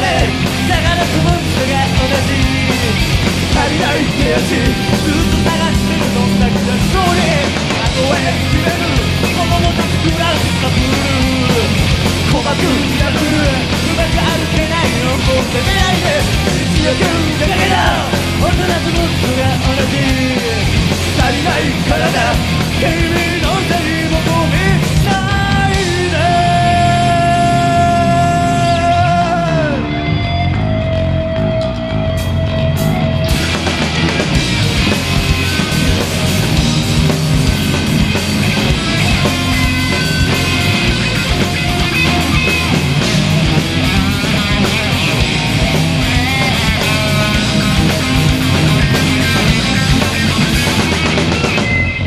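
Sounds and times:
bass guitar: 0:00.0 - 0:52.0
distorted electric guitars: 0:00.0 - 0:52.0
drum kit: 0:00.0 - 0:52.0
rock band playing live: 0:00.0 - 0:52.0.

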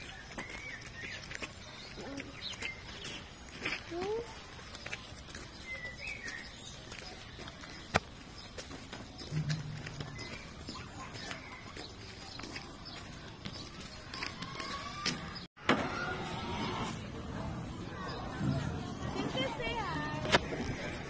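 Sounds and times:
hooves on gravel: 0:00.0 - 0:15.5.

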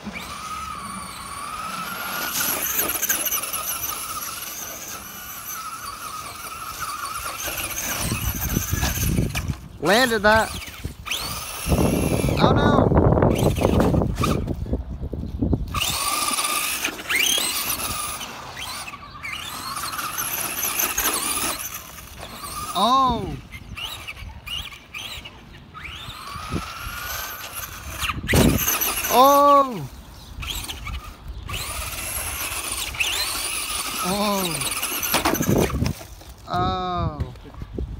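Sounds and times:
toy truck motor whining: 0:00.0 - 0:14.6, 0:15.2 - 0:37.2
tyres churning through snow: 0:00.0 - 0:14.8, 0:15.7 - 0:37.3.

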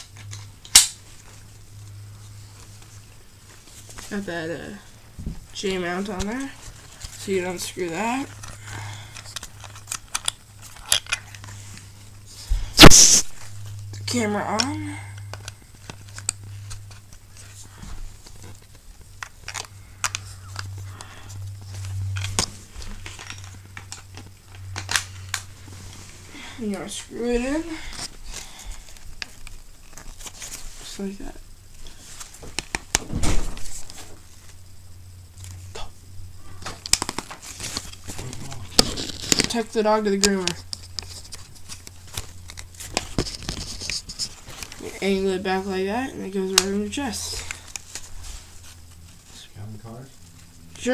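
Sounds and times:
rustling handling noise: 0:00.0 - 0:35.7, 0:36.4 - 0:50.9
steady low hum: 0:00.0 - 0:50.9.

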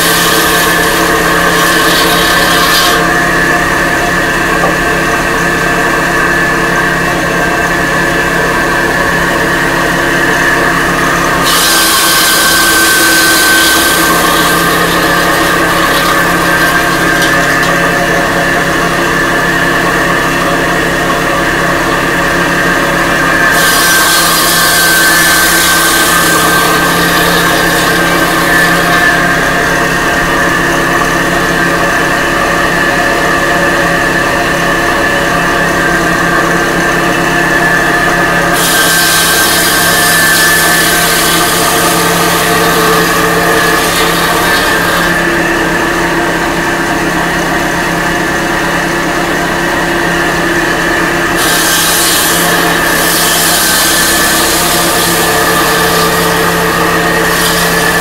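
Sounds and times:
blade grinding into brick: 0:00.0 - 0:07.2, 0:09.1 - 0:20.8, 0:21.4 - 0:32.9, 0:35.1 - 0:47.2, 0:50.0 - 0:58.0
stone-cutting saw whining: 0:00.0 - 0:58.0.

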